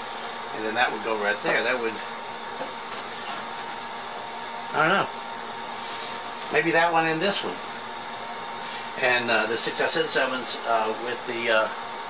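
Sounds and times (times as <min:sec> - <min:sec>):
workshop room hiss: 0:00.0 - 0:12.0.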